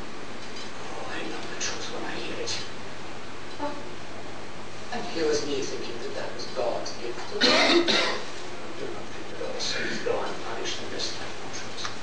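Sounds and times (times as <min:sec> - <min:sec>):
person coughing: 0:07.4 - 0:08.2.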